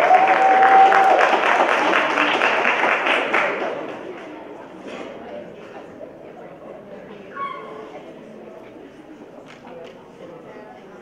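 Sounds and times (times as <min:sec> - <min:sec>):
audience murmur in a hall: 0:00.0 - 0:11.0.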